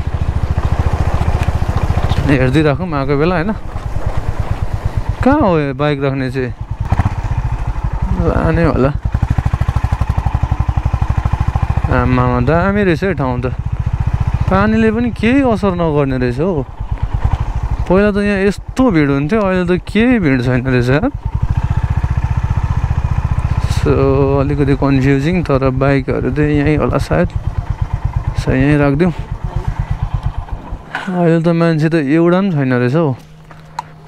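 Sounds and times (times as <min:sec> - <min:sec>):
motorcycle engine running: 0:00.0 - 0:34.0
wind and road noise: 0:00.0 - 0:34.0.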